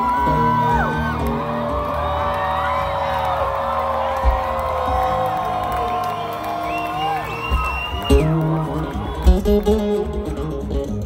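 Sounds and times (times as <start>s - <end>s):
crowd cheering and whooping: 0.0s - 10.8s
live concert music over pa: 0.0s - 11.0s.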